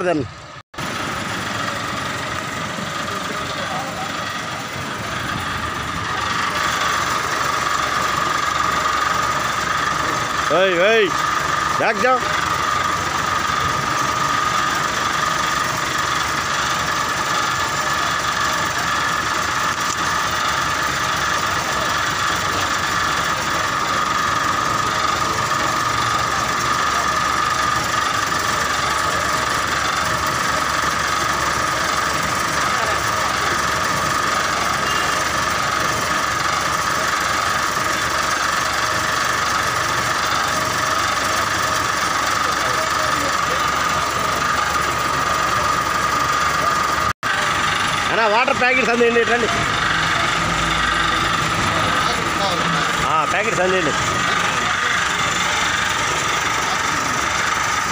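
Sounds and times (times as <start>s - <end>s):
people talking: 0.0s - 0.3s, 2.6s - 57.9s
bus engine idling with whine: 0.0s - 57.9s.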